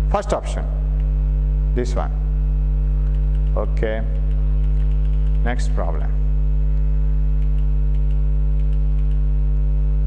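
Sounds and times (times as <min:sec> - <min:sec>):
electrical mains hum: 0:00.0 - 0:10.0
faint regular ticks: 0:03.0 - 0:05.5, 0:07.4 - 0:09.3.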